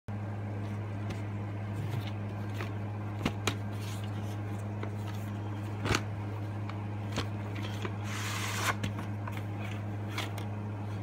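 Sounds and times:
low electrical hum: 0.1s - 11.0s
plastic case rustling slide: 7.6s - 10.4s.

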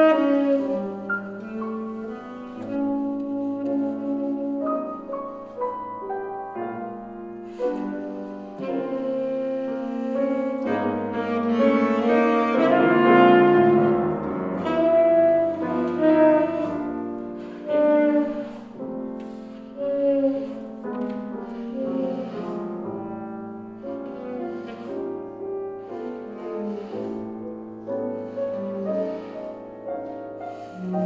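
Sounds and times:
saxophone melody: 0.0s - 5.7s, 7.5s - 25.4s, 28.2s - 31.0s
piano accompaniment: 0.0s - 31.0s.

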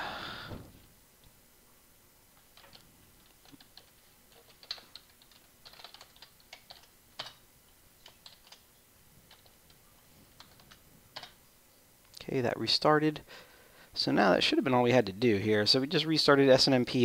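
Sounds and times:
computer keyboard typing: 2.5s - 7.4s, 8.0s - 8.7s, 9.3s - 9.8s, 10.4s - 11.4s.

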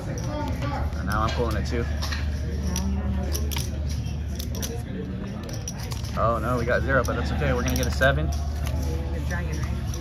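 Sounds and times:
playing cards clicking and rustling: 1.0s - 8.9s.

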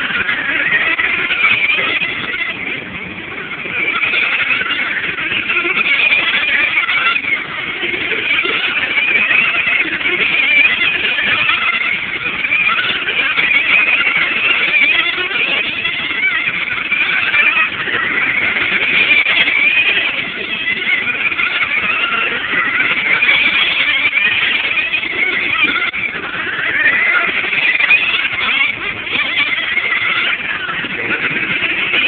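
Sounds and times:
radio-controlled car motors whining: 0.0s - 32.0s.

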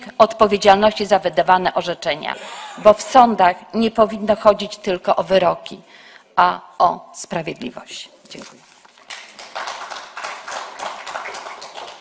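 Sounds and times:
crowd applauding: 9.0s - 12.0s.

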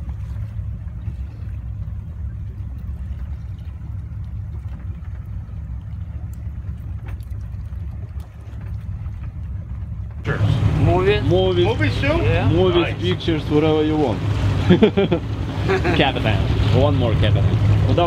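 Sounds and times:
boat engine humming: 0.0s - 18.0s
water noise: 0.0s - 18.0s.

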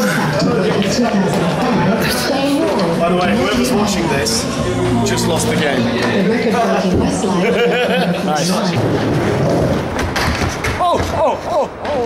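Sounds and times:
skateboard wheels rolling: 8.8s - 12.0s.

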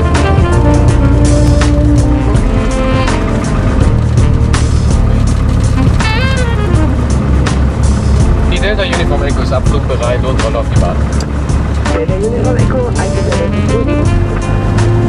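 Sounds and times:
background music: 0.0s - 15.0s
gliding pitched sound: 0.0s - 15.0s
small plane engine running: 0.0s - 15.0s.

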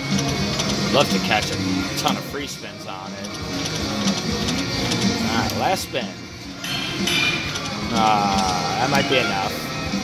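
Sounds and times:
slot machine reels spinning: 0.0s - 10.0s.

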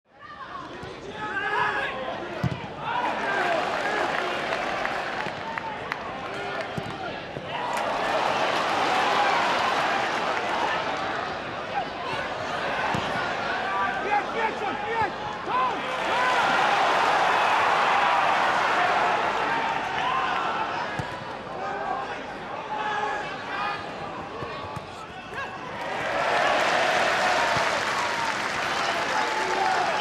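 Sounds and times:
stadium crowd noise: 0.1s - 30.0s
fans shouting: 0.3s - 30.0s.

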